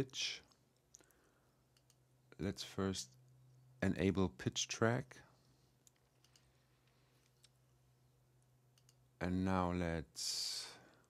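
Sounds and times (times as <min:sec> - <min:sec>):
low steady hum: 0:00.0 - 0:11.0
computer mouse clicks: 0:00.5 - 0:02.0, 0:05.8 - 0:07.6, 0:08.7 - 0:09.0.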